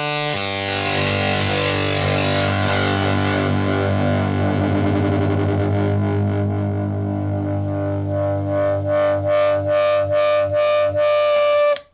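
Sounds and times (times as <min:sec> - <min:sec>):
fuzzed electric guitar chord: 0:00.0 - 0:11.8.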